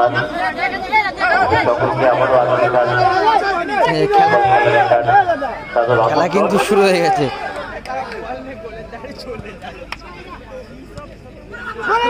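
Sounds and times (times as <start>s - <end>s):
men talking and shouting: 0.0s - 12.0s.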